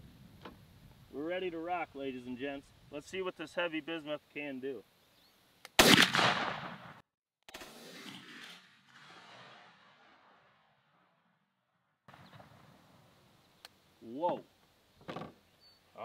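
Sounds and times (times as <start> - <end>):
shotgun blast: 5.8 - 10.6.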